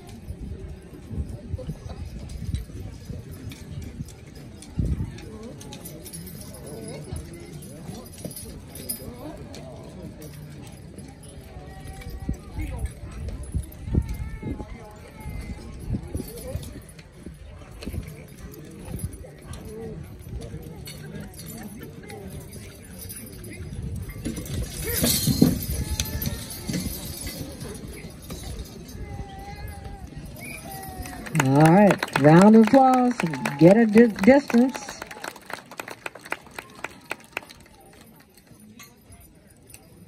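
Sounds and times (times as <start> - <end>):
harness jingling: 0.0 - 36.0, 36.6 - 40.0
people talking: 30.6 - 35.8.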